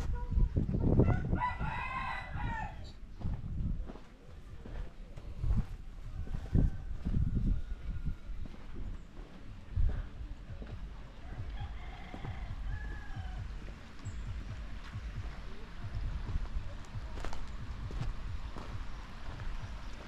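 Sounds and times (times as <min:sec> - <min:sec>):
rooster crowing: 0:01.0 - 0:03.0, 0:06.1 - 0:08.6, 0:11.2 - 0:13.5
low thumps and rumble: 0:03.2 - 0:04.0, 0:05.4 - 0:20.0.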